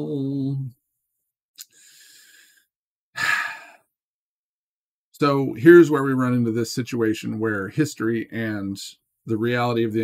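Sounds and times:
man breathing: 1.6 - 3.9.

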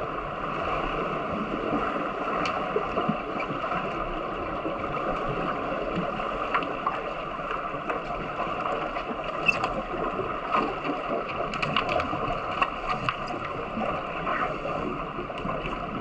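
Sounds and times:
muffled underwater water rush: 0.0 - 16.0
sharp clicks and knocks underwater: 2.3 - 4.0, 4.7 - 16.0.

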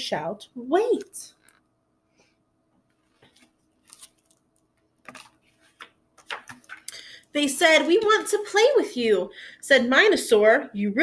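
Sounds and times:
book rustling and tapping: 2.8 - 6.9
page turning: 2.9 - 6.9.

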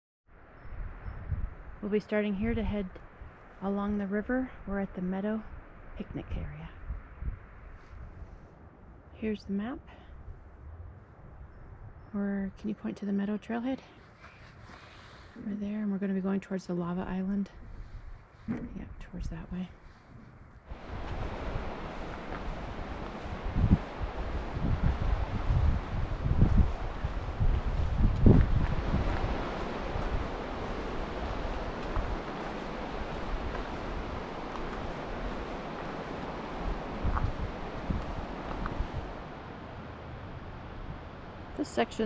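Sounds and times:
wind buffeting microphone: 0.4 - 12.9, 14.5 - 42.0
steady rushing noise: 17.6 - 42.0.

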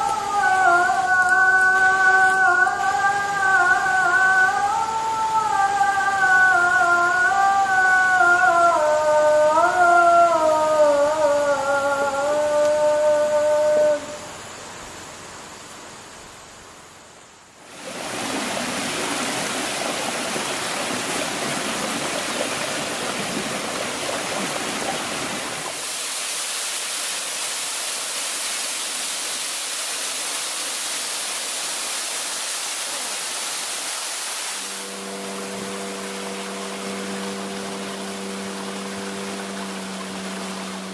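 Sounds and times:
waterfall rushing: 0.0 - 8.7, 17.7 - 40.9
boat engine hum: 0.0 - 17.0, 17.6 - 26.0, 34.6 - 40.9.

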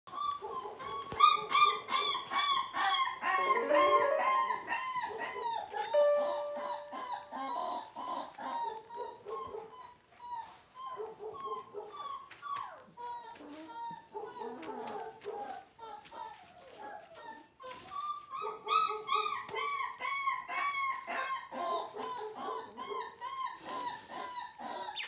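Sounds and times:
puppy whining and crying: 0.1 - 15.0, 15.8 - 25.0.

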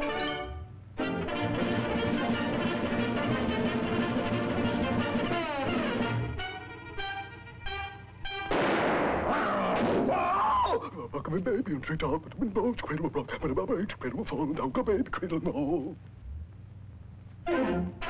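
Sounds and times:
brass-led orchestral cartoon music: 0.0 - 9.2, 17.5 - 18.0
loud noisy crash: 8.5 - 10.3.

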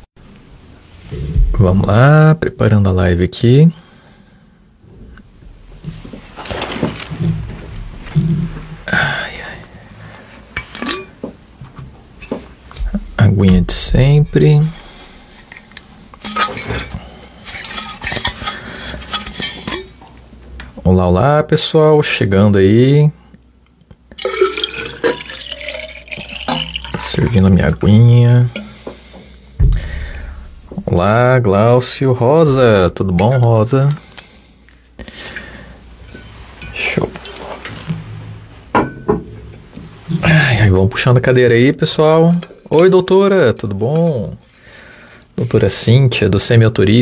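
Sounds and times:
handling noise at desk: 5.9 - 8.4
metal water bottle clinking: 16.2 - 20.0, 24.2 - 27.3
sharp knock: 29.6 - 30.9.

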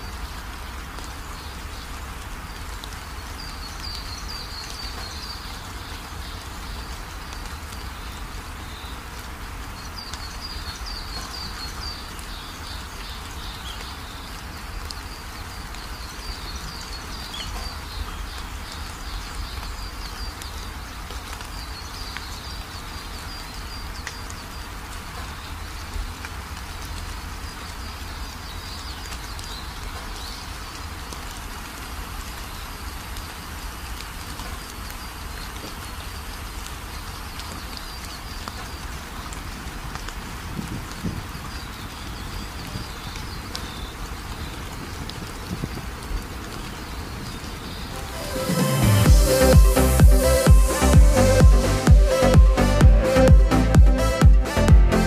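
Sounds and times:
birds chirping: 1.3 - 26.1, 45.6 - 55.0
steady rushing noise: 47.9 - 55.0.

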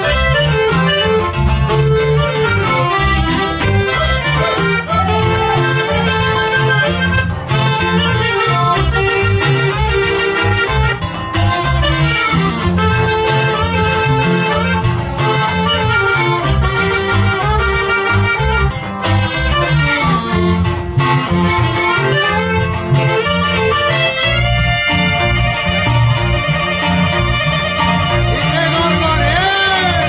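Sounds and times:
accordion: 0.0 - 30.0
electric bass line: 0.0 - 30.0
saxophone: 0.0 - 30.0.

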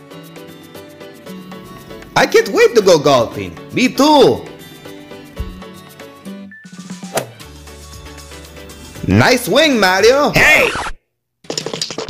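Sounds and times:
background music: 0.0 - 10.4
golf club striking ball: 7.1 - 7.4.

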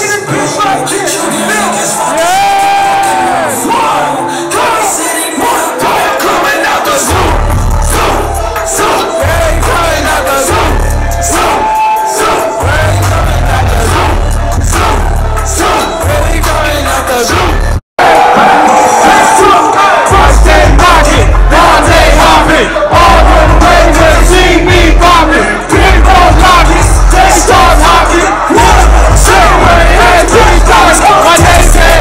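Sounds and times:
loud concert music: 0.0 - 32.0
crowd shouting along: 1.6 - 32.0
heavy bass line: 7.0 - 11.8, 12.6 - 17.8, 20.1 - 32.0.

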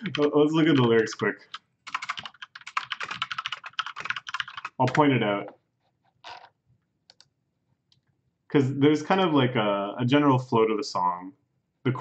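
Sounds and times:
keyboard and mouse clicks: 0.0 - 7.3.

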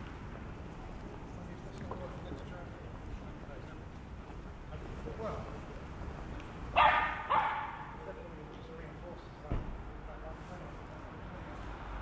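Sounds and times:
dog barking: 6.8 - 8.0.

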